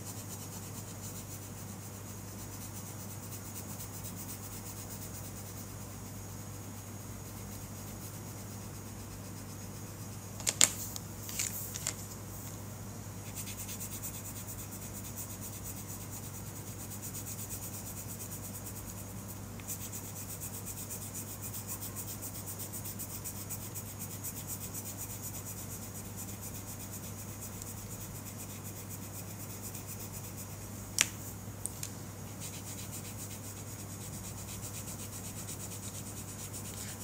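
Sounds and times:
steady low hum: 0:00.0 - 0:37.0
pencil scratching on paper: 0:13.2 - 0:30.6, 0:32.3 - 0:37.0.

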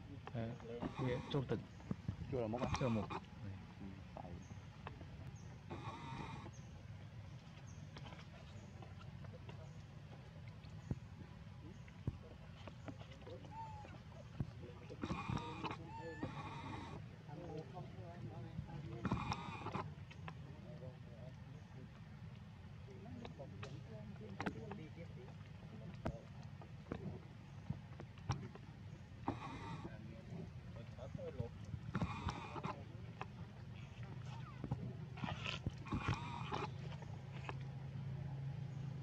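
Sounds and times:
steady low hum: 0:00.0 - 0:39.0
infant monkey crying: 0:13.5 - 0:14.0, 0:15.0 - 0:17.0.

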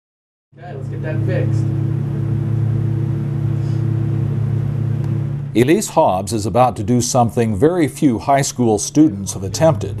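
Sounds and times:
single-engine aircraft drone: 0:00.6 - 0:10.0.

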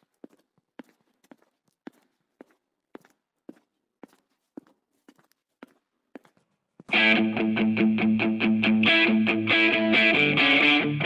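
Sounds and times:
footsteps on concrete floor: 0:00.0 - 0:07.0.

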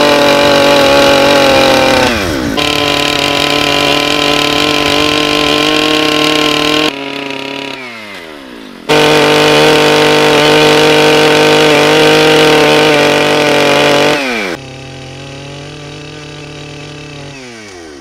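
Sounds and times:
chainsaw cutting log: 0:00.0 - 0:18.0.

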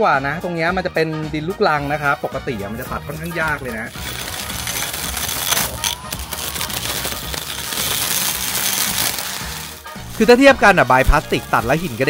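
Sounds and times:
electric brush cutter cutting grass: 0:03.0 - 0:12.0.

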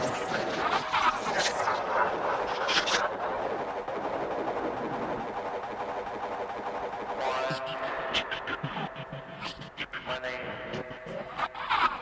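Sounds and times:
electronic noisy texture wash: 0:00.0 - 0:12.0.

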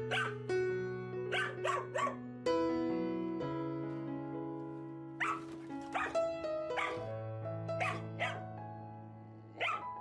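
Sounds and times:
background music with held notes: 0:00.0 - 0:10.0
young dog barking: 0:00.1 - 0:00.4, 0:01.3 - 0:02.2, 0:05.2 - 0:06.2, 0:06.8 - 0:07.1, 0:07.8 - 0:08.4, 0:09.6 - 0:10.0.

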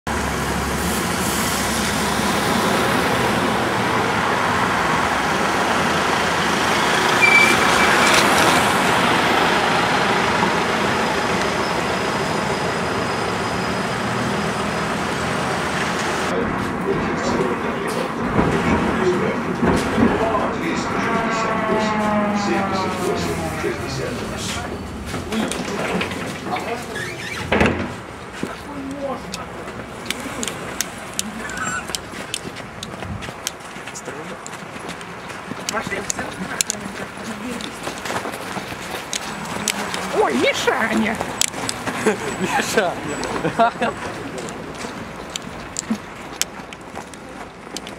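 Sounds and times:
dense city traffic: 0:00.1 - 0:47.9
tram traction drive whine: 0:00.1 - 0:47.9.

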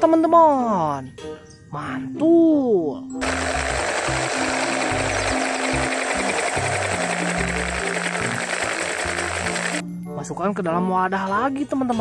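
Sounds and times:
helicopter rotor chopping: 0:03.2 - 0:09.8.

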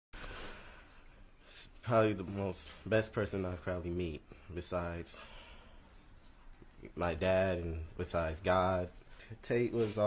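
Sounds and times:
person speaking: 0:06.7 - 0:10.0.

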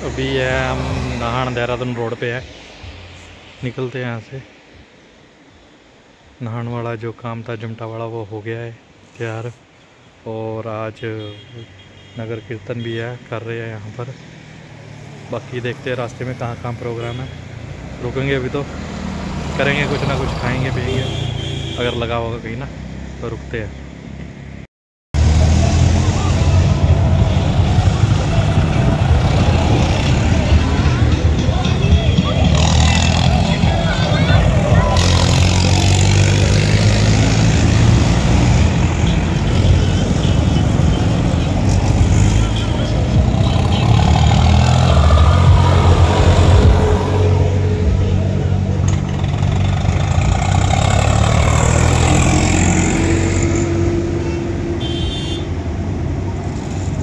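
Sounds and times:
vehicle engines rumbling past: 0:00.0 - 0:04.7, 0:12.8 - 0:24.6, 0:25.2 - 0:57.0
voices: 0:19.4 - 0:23.8, 0:25.4 - 0:37.9, 0:38.6 - 0:55.3.

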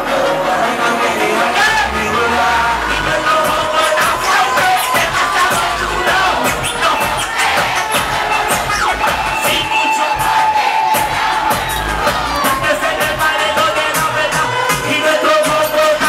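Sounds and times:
crowd cheering and shouting: 0:00.0 - 0:16.0
reggaeton music over sound system: 0:00.0 - 0:16.0.

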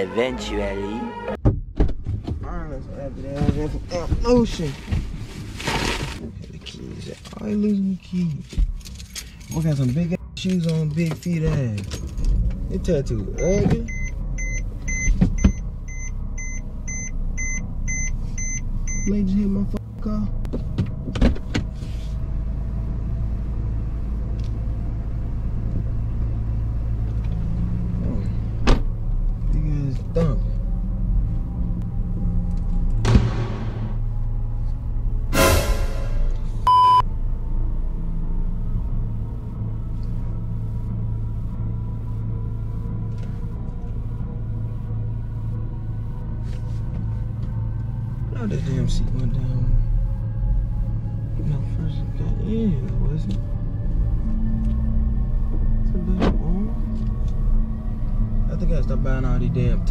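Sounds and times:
car engine rumble: 0:00.0 - 0:59.9
road noise inside car: 0:00.0 - 0:59.9
short steady beep: 0:13.4 - 0:19.2, 0:35.4 - 0:37.1
whooshing sweeps: 0:35.3 - 0:36.7.

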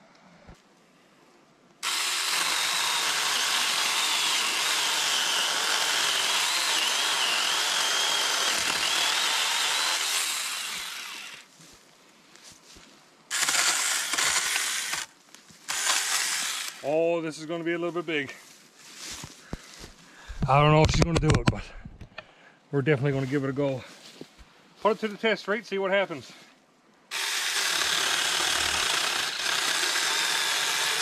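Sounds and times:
electric chainsaw motor whining: 0:01.8 - 0:11.5, 0:13.3 - 0:15.1, 0:15.7 - 0:16.8, 0:27.1 - 0:31.0.

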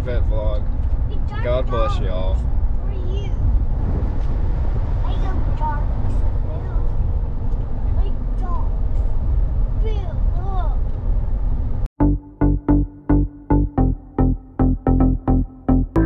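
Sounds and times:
road and engine rumble in car: 0:00.0 - 0:11.9.

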